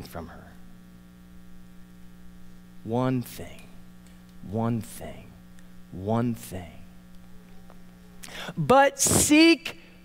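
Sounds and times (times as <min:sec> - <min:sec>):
electrical mains hum: 0:00.0 - 0:10.0
man speaking: 0:02.8 - 0:03.8, 0:04.4 - 0:07.0, 0:08.5 - 0:09.8.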